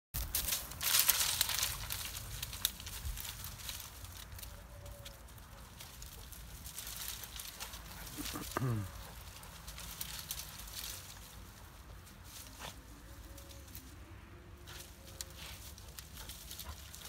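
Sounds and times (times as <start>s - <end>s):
dog rustling through dry grass: 0.2s - 17.0s.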